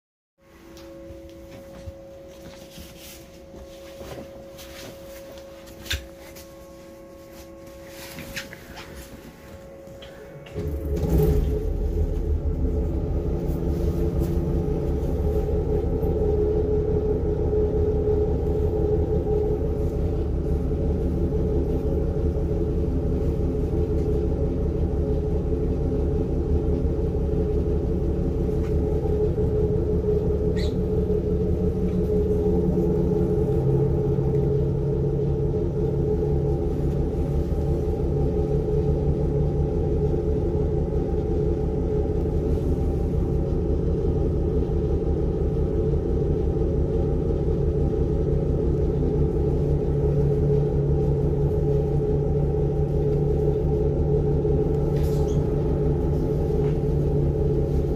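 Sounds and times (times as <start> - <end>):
diesel engine idling: 8.5 - 57.9
high squeak: 30.4 - 31.1.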